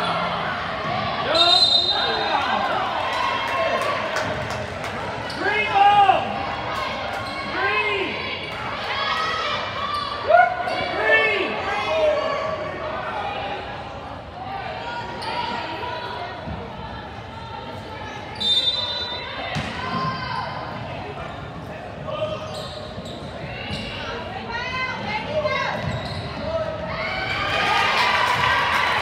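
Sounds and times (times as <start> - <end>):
sneakers squeaking: 7.0 - 8.0, 18.3 - 27.0.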